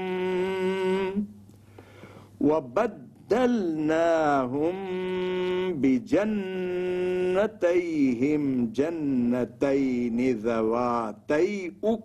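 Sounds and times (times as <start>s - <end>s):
man reciting melodically: 0.0s - 1.4s, 2.1s - 12.0s.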